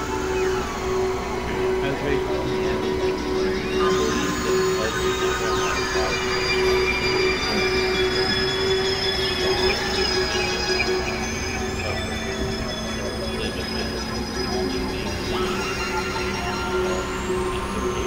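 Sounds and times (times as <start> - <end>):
synthesizer drone music: 0.0 - 18.0.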